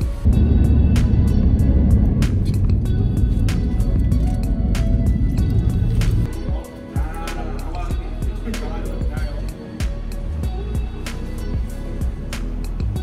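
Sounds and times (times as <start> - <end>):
music with heavy bass beat: 0.0 - 13.0.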